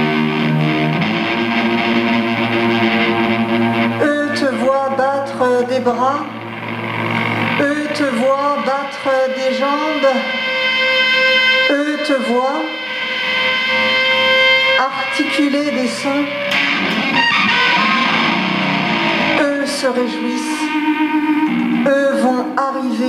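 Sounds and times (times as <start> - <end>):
electric guitar bending notes: 0.0 - 23.0.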